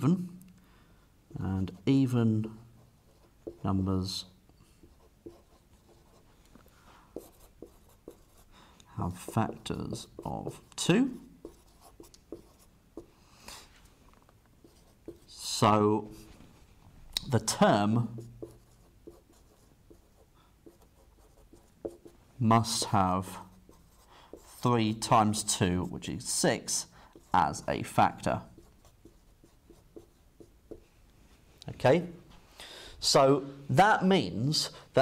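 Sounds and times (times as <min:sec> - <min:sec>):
marker writing on whiteboard: 0:02.9 - 0:06.3, 0:07.0 - 0:13.6, 0:14.6 - 0:16.4, 0:17.2 - 0:31.0.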